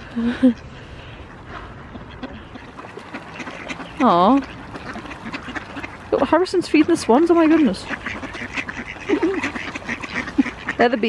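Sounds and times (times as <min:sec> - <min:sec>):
ducks calling: 0:00.0 - 0:11.0.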